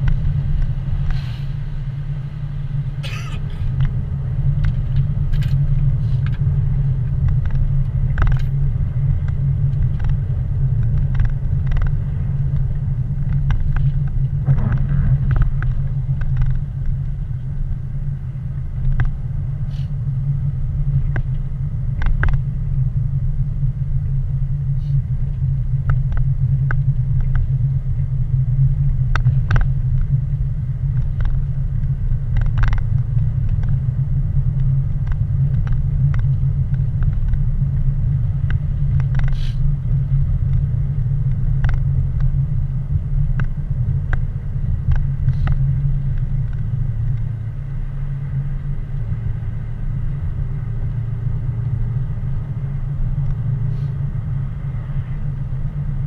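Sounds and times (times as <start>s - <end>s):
car engine and road rumble: 0.0s - 56.0s.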